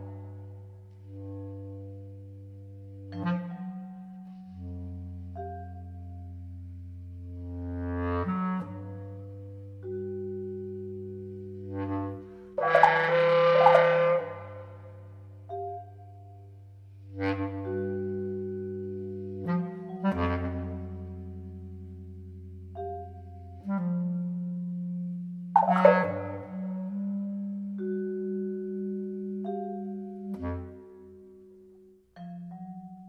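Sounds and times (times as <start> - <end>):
clarinet long held notes: 0.0 - 16.2, 17.1 - 31.5
low sustained tones: 0.0 - 32.1.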